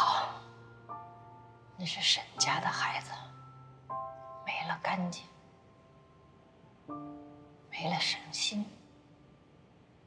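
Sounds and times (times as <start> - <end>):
quiet music of held chords: 0.0 - 10.0
woman speaking: 1.8 - 3.3, 4.5 - 5.3, 7.7 - 8.8.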